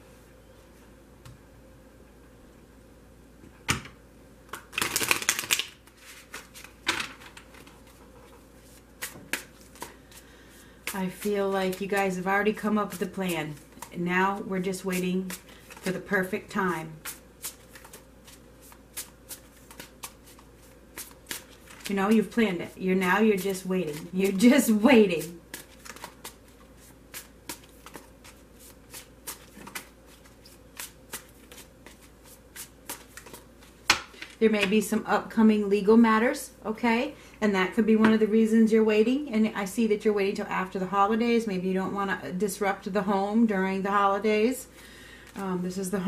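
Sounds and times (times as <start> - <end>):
cards snapping: 4.5 - 6.4
cards being shuffled: 4.5 - 10.2, 16.9 - 34.4.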